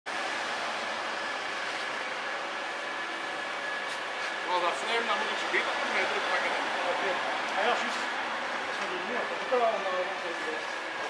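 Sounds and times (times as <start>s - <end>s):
steady mechanical noise: 0.1s - 11.0s.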